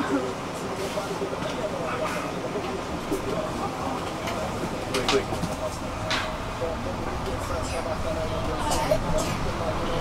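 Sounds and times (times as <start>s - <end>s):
bus engine and road noise: 0.0s - 10.0s
passengers conversing: 0.0s - 10.0s.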